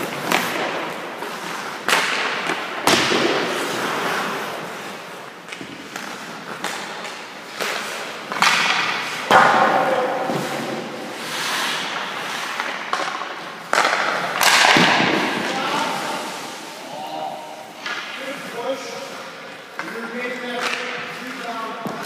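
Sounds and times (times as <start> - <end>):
hockey sticks cracking pucks: 0.0 - 22.0
pucks hitting pads or boards: 0.0 - 22.0
skates scraping on ice: 0.0 - 22.0.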